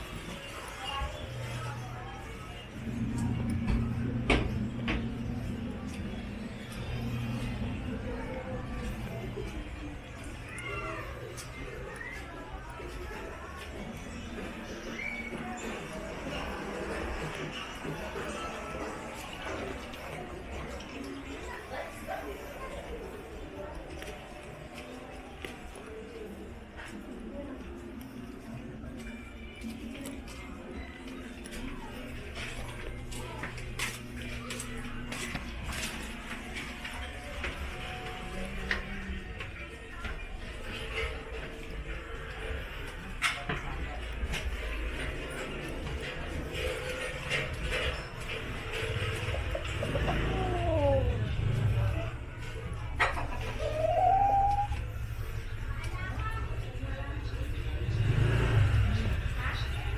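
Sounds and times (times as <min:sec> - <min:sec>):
scattered voices: 0:00.0 - 0:59.9.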